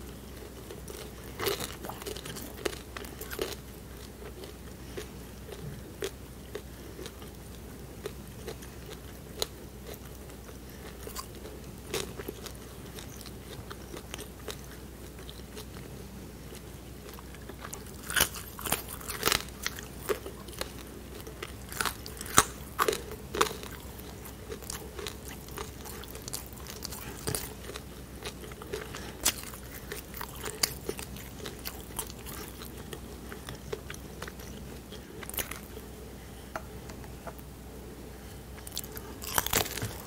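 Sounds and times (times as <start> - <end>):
close chewing with crunchy clicks: 0.0 - 15.9, 16.5 - 35.9, 38.6 - 40.0.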